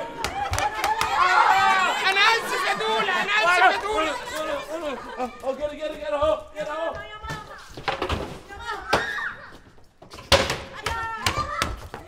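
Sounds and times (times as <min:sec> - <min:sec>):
women screaming: 0:00.0 - 0:05.0.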